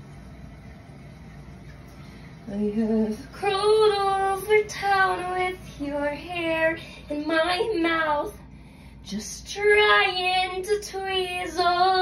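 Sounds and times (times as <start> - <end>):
low background hum: 0.0 - 12.0.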